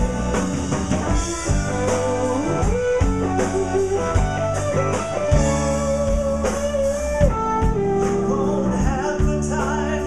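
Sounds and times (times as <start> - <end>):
blues-rock band playing: 0.0 - 10.0.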